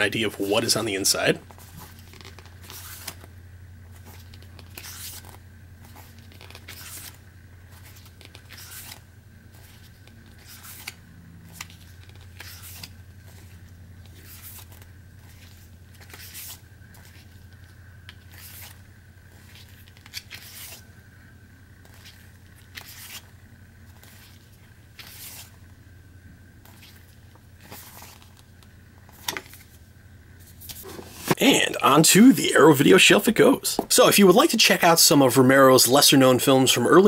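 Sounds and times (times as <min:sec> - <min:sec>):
paper pages flipping: 0:00.4 - 0:03.3, 0:03.9 - 0:20.9, 0:21.8 - 0:25.6, 0:26.6 - 0:29.8, 0:30.4 - 0:31.4.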